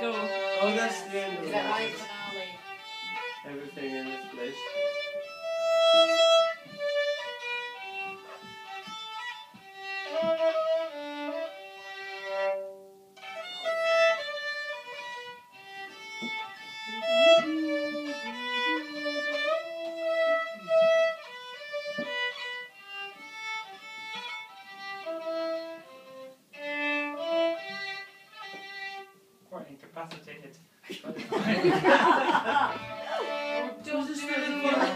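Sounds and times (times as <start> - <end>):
fiddle playing a tune: 0.0 - 29.4, 31.6 - 34.9.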